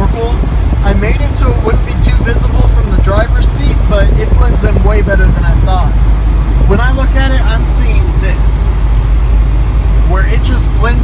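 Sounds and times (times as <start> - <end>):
man talking: 0.0 - 6.0, 6.6 - 8.7, 10.0 - 11.0
road and engine rumble in car: 0.0 - 11.0.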